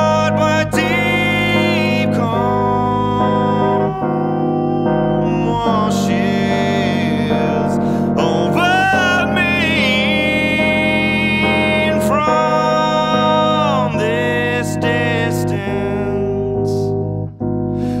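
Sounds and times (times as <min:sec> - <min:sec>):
man singing slow song: 0:00.0 - 0:17.2, 0:17.8 - 0:18.0
electric piano chords: 0:00.0 - 0:18.0.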